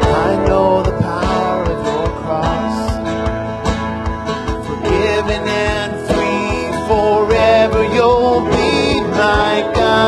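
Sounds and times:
bass guitar: 0.0s - 10.0s
drum kit beat: 0.0s - 10.0s
electric guitar: 0.0s - 10.0s
strummed acoustic guitars: 0.0s - 10.0s.

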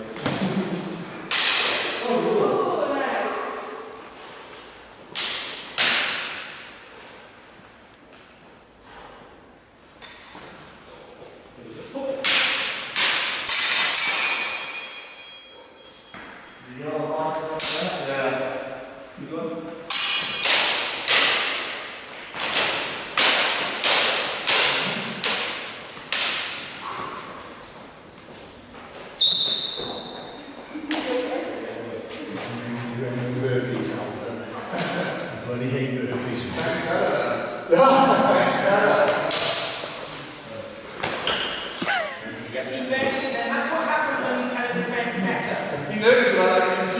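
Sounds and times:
steel swords clashing: 12.3s - 16.6s, 19.9s - 21.7s
steel ringing: 14.0s - 16.9s.

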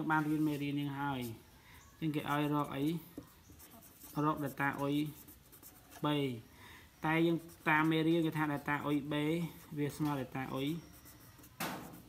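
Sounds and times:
person speaking: 0.0s - 11.6s
pen scratching on paper: 2.2s - 6.1s, 7.1s - 12.0s.

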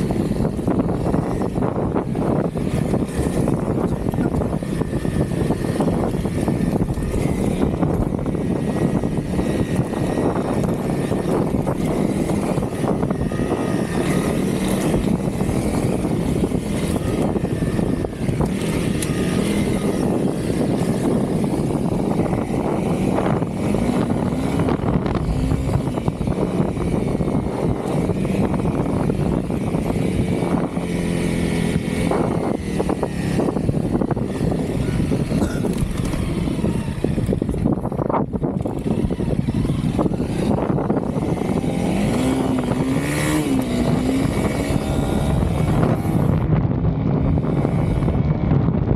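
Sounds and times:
motorcycle engine running: 0.0s - 48.9s
wind rumble on microphone: 0.0s - 48.9s.

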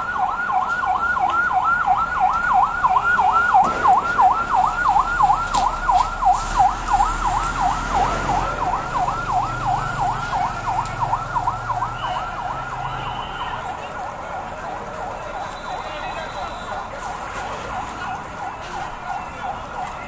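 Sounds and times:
electronic siren yelping: 0.0s - 16.9s.

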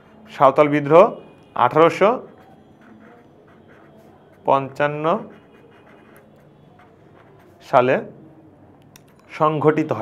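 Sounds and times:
pen scratching on paper: 0.0s - 0.6s, 1.7s - 8.1s.

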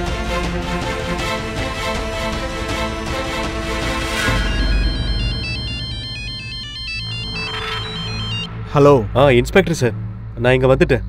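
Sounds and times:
low background music: 0.0s - 11.0s
mobile phone ringtone: 4.2s - 8.5s.

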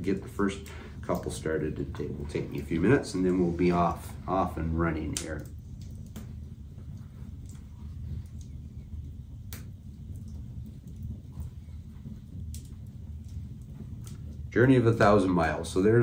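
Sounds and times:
steady low hum: 0.0s - 16.0s
sharp small clicks: 5.2s - 8.6s, 9.4s - 11.5s.

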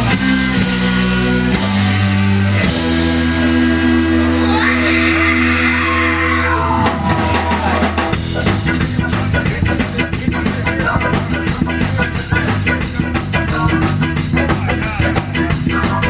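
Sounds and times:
live band playing: 0.0s - 16.0s.

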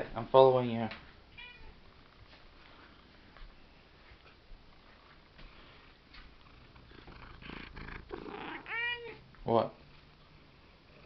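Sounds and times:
cat meow: 1.3s - 1.8s, 8.2s - 9.2s
cat purring: 4.3s - 9.2s.

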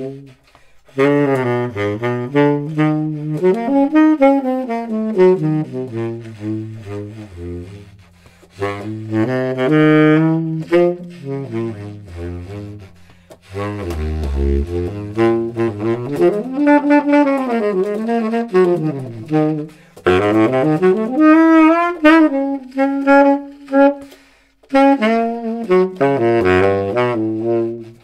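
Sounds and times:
baritone saxophone jazz solo: 0.0s - 28.0s.

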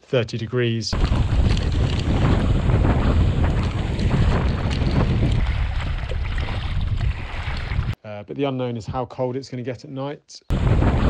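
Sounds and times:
wind buffeting microphone: 0.9s - 8.0s, 10.5s - 11.0s
water rushing and splashing: 1.0s - 8.0s.

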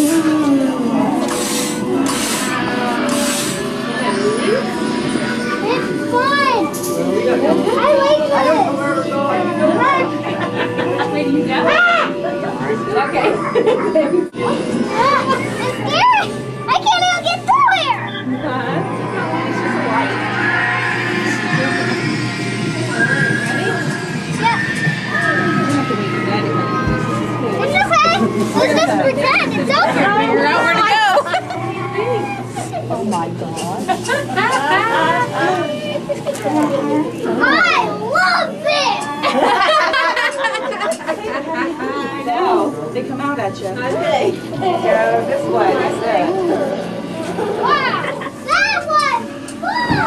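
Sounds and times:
young children squealing: 19.1s - 29.0s, 49.6s - 50.0s.

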